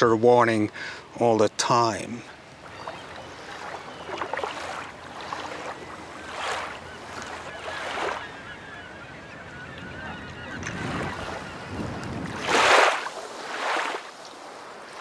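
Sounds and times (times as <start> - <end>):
birds calling: 0.0 - 12.9
waves washing on shoreline: 0.0 - 15.0.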